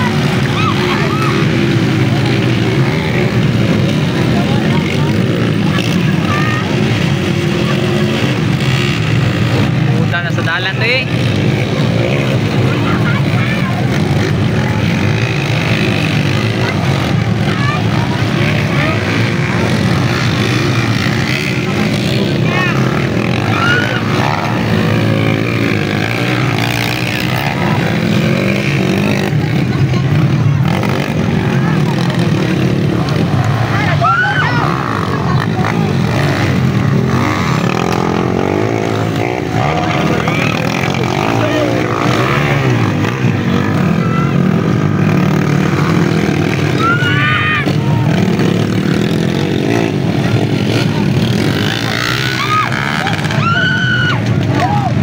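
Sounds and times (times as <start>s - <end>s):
din of voices: 0.0s - 55.0s
motorcycle engines revving: 0.0s - 55.0s.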